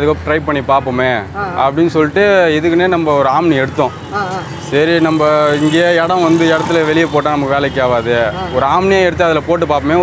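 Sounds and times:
man talking: 0.0 - 10.0.

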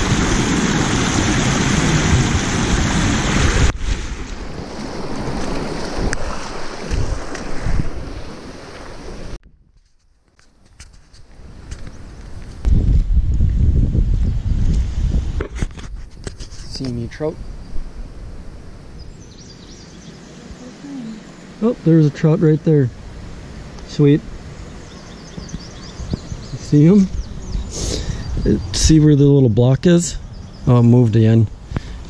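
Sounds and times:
river water rushing over concrete: 0.0 - 3.8
wind rumbling on microphone: 0.0 - 10.0, 10.6 - 21.8, 22.9 - 32.0
outdoor noise: 0.0 - 32.0.

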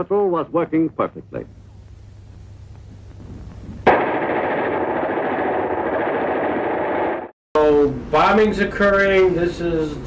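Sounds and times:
faint hum: 0.0 - 10.0
machine-gun fire: 3.8 - 7.3.

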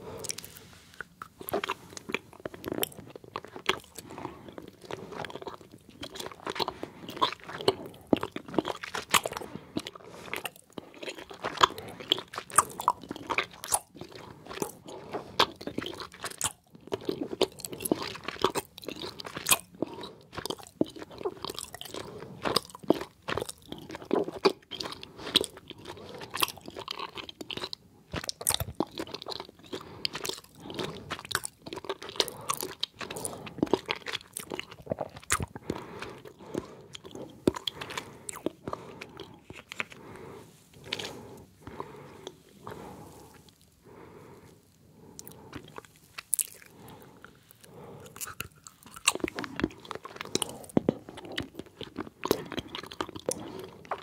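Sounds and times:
chewing gummy candies: 0.0 - 54.0.

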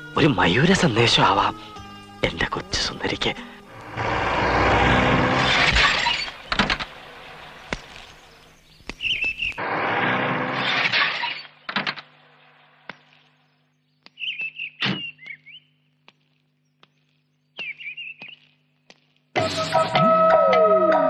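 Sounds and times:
birds chirping: 6.0 - 9.6, 12.9 - 19.0.

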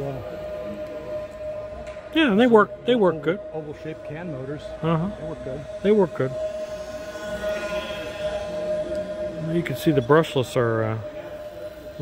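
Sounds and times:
model plane motors whining: 0.0 - 12.0.

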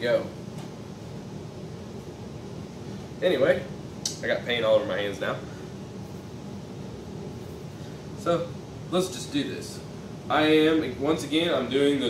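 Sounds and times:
room noise hiss and hum: 0.0 - 12.0.

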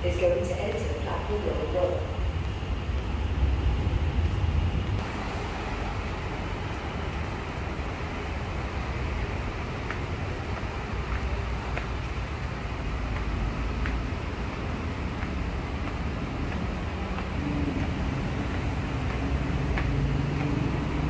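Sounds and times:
rail station rumble: 0.0 - 21.0.

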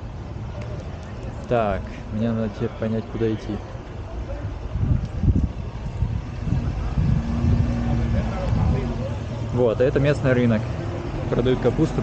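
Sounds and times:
wind buffeting microphone: 4.3 - 9.6.

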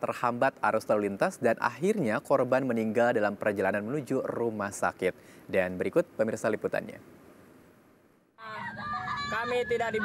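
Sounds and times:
faint hiss: 0.0 - 8.3
ambulance siren wailing: 8.5 - 10.0.

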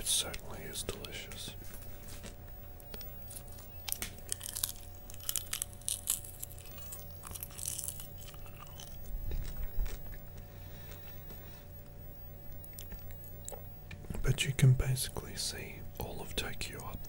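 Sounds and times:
popcorn being chewed: 0.2 - 14.0.

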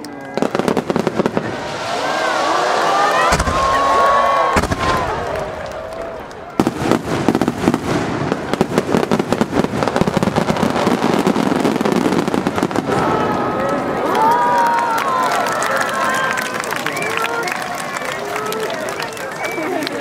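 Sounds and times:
fireworks bursts: 0.2 - 14.1.

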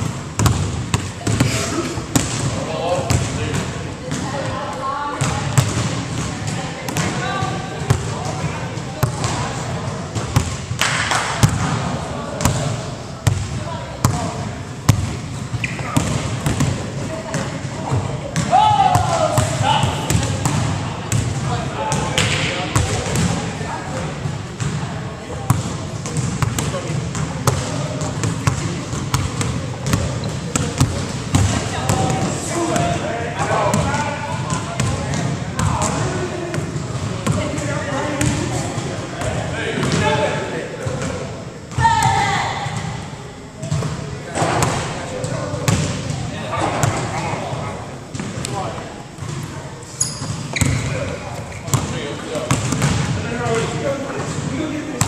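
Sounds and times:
basketballs bouncing on hardwood: 0.4 - 1.5, 25.5 - 32.3, 50.2 - 50.8, 52.5 - 53.1
players' voices: 0.5 - 55.0.

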